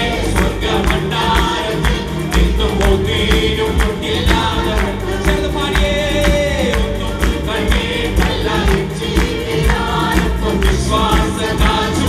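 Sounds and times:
acoustic guitar: 0.0s - 12.0s
keyboard: 0.0s - 12.0s
voices singing together: 0.0s - 12.0s.

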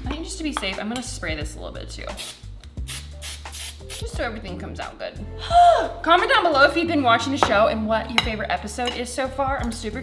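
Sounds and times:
background music: 0.0s - 10.0s
aerosol cooking spray hissing: 2.2s - 4.2s.

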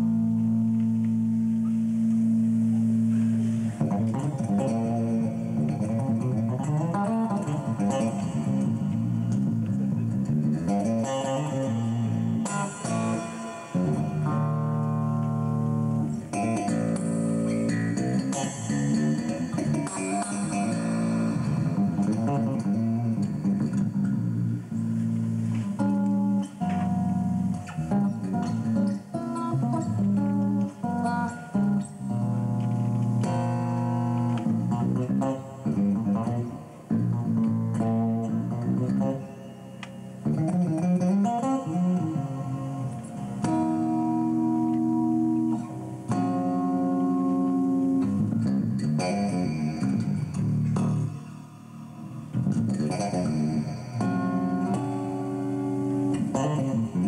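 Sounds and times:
electric bass playing solo: 0.0s - 57.0s.

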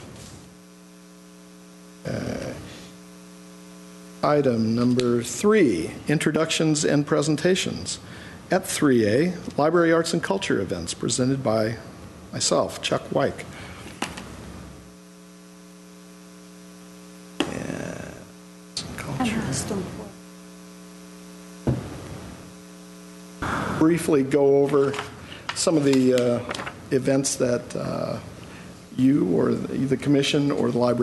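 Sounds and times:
low electrical hum: 0.0s - 31.0s
person speaking: 23.8s - 28.3s.

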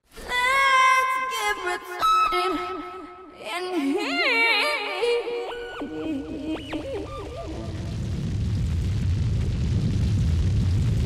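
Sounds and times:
deep fire rumble: 7.4s - 11.0s.

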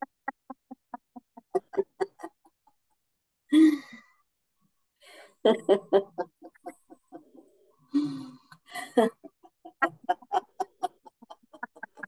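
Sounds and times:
woman laughing loudly: 1.1s - 2.5s, 8.7s - 12.0s.

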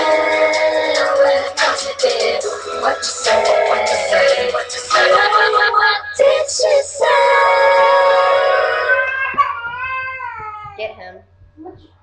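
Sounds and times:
backing music: 0.0s - 9.0s.

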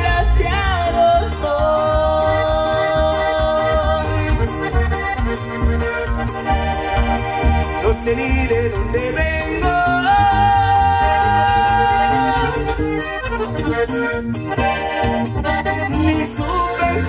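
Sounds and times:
accordion: 0.0s - 17.0s
acoustic guitar: 0.0s - 17.0s
electric bass: 0.0s - 17.0s.

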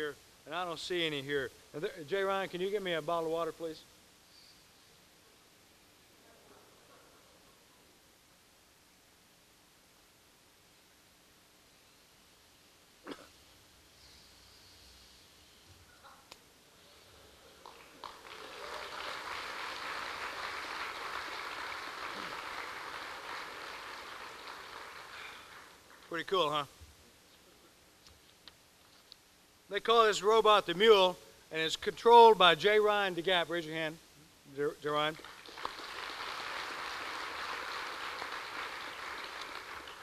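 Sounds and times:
audience applause: 17.4s - 26.1s, 35.2s - 40.0s.

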